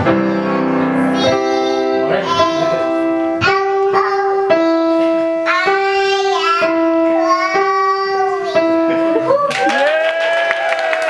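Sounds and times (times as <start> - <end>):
girl singing: 0.0 - 9.5.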